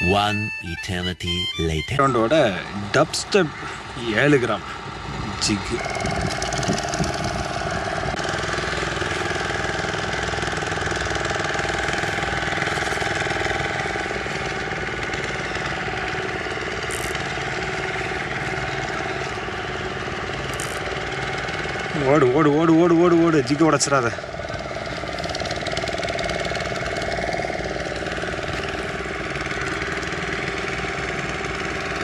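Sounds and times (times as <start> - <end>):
engine-like running hum: 0.0 - 32.0.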